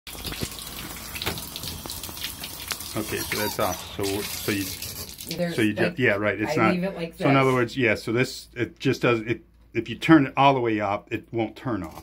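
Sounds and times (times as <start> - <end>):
water running into bathtub: 0.1 - 5.9.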